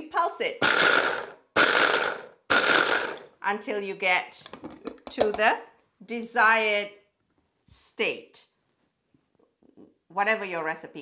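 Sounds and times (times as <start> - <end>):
stick blender chopper pulsing: 0.6 - 3.3.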